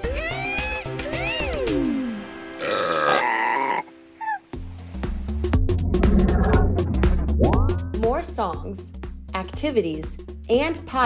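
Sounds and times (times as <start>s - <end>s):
children's music: 0.0s - 2.6s, 7.0s - 11.0s
cartoon burp: 2.6s - 4.4s
short falling blip: 5.9s - 8.0s.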